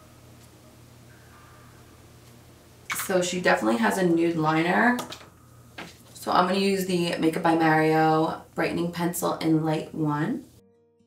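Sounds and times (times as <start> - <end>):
woman speaking: 2.9 - 5.1, 6.2 - 10.5.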